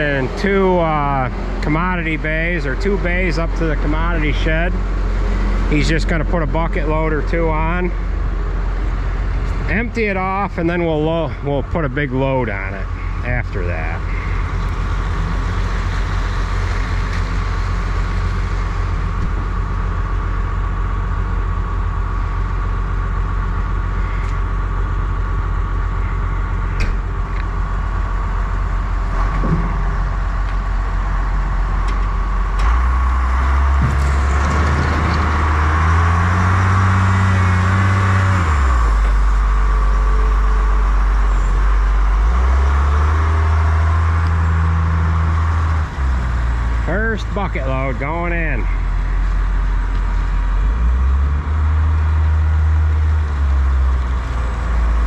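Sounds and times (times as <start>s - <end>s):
diesel engine running: 0.0s - 55.0s
engine revving under load: 0.0s - 55.0s.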